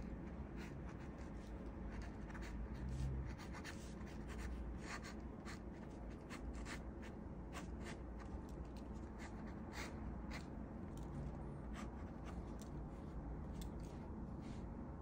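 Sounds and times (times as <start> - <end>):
pen scratching on paper: 0.2 - 10.5, 11.6 - 12.6.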